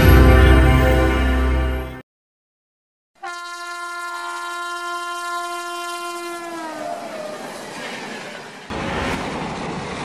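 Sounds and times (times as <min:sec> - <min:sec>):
train horn blast: 0:03.2 - 0:07.3
moving train rumble: 0:03.8 - 0:10.0.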